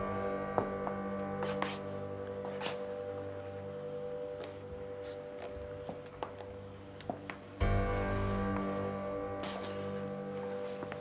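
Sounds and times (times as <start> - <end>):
sustained chord underscore music: 0.0 - 11.0.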